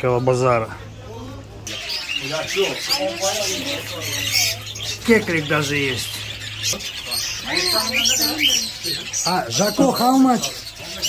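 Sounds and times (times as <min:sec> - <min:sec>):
parrots chirping and twittering: 0:00.0 - 0:11.0.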